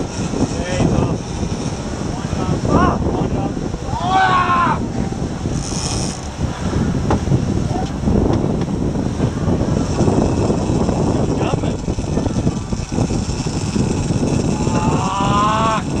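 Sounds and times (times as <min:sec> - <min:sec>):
boat engine running: 0:00.0 - 0:16.0
wake rushing: 0:00.0 - 0:16.0
person shouting: 0:03.9 - 0:04.9, 0:14.6 - 0:15.9.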